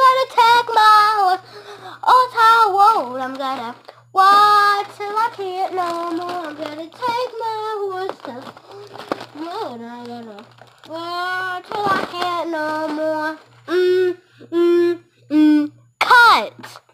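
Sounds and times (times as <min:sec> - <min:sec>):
girl singing: 0:00.0 - 0:15.8.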